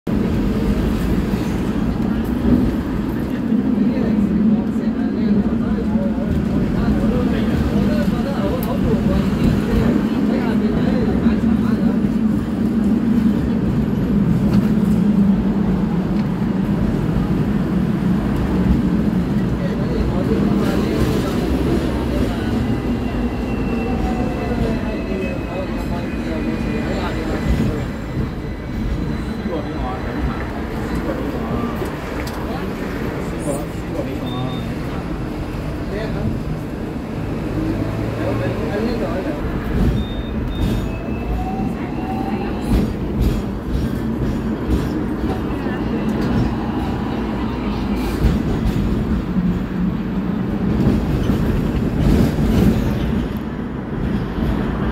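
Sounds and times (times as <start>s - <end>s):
tram rumbling on tracks: 0.1s - 54.9s.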